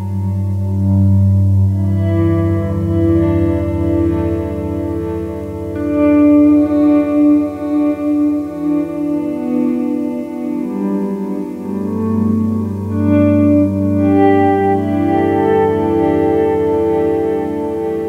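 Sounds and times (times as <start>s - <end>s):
steady low note: 0.0s - 10.5s
electric guitar with echoing delay: 0.0s - 18.0s.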